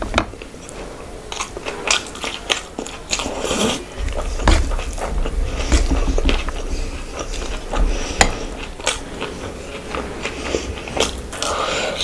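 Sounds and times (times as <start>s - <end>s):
chewing and wet mouth sounds: 0.4s - 12.0s.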